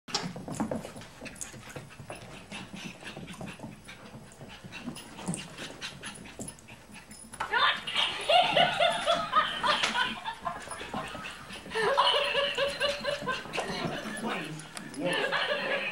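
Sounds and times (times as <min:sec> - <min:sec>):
puppy scuffling with plush toy: 0:00.1 - 0:15.9
dog noises: 0:00.2 - 0:15.9.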